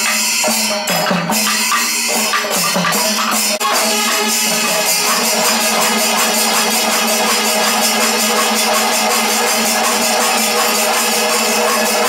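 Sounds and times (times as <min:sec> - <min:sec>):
hand cymbals clashing: 0:00.0 - 0:12.0
brass horns holding tones: 0:03.6 - 0:09.7.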